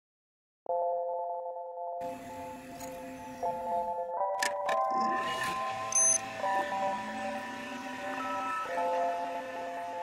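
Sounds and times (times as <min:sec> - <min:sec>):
electronic chord tones: 0:01.9 - 0:10.0
loud high chime: 0:05.7 - 0:10.0.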